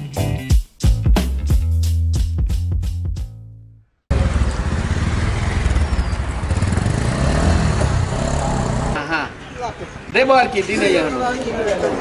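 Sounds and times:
intro music: 0.0 - 3.7
traffic noise: 4.1 - 12.0.

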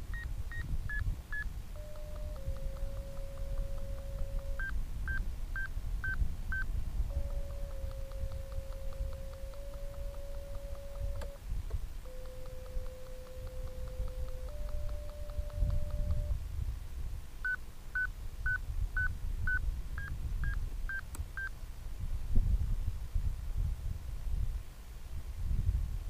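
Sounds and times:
variometer tones: 0.0 - 16.4
wind on microphone: 0.0 - 17.2, 18.2 - 26.0
short high beeps: 0.1 - 11.4, 12.1 - 16.4.

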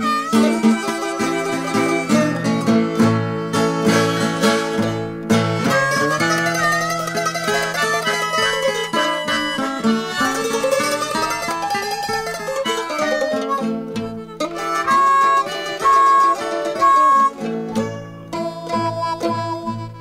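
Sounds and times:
acoustic guitar picking: 0.0 - 20.0
mandolin picking: 0.0 - 20.0.

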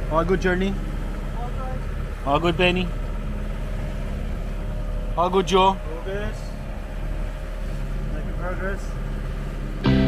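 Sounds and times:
water rushing along hull: 0.0 - 9.9
diesel engine droning: 0.0 - 10.0.

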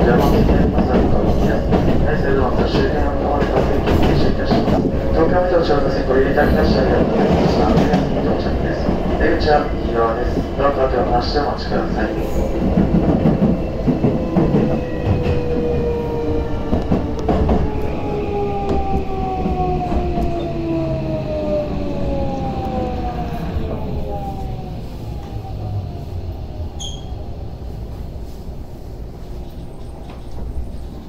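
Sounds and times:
train wheels rumbling on rail: 0.0 - 31.0.

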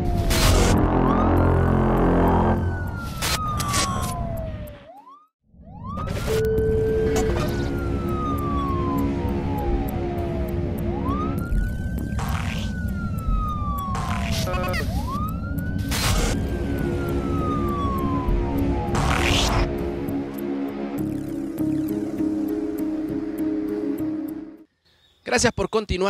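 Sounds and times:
theme music: 0.0 - 4.7, 5.7 - 24.7
emergency vehicle siren wailing: 0.0 - 24.7.

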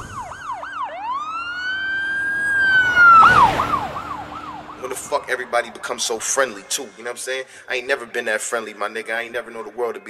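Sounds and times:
emergency vehicle siren: 0.0 - 7.0.

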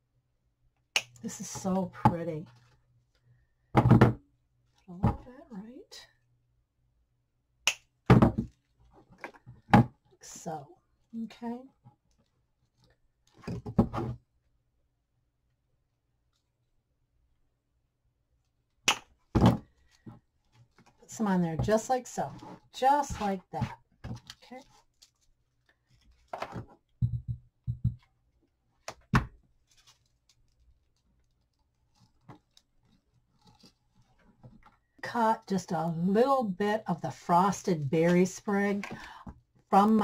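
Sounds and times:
knocks and rustling on tabletop: 3.8 - 4.2, 13.4 - 14.2, 19.3 - 20.2, 26.3 - 28.1
plastic sprig clicks and rustles: 24.1 - 26.4
knock on table: 27.0 - 28.0.

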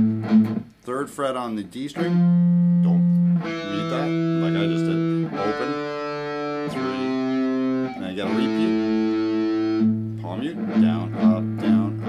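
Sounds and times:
distorted electric guitar notes: 0.0 - 0.7, 2.0 - 12.0.

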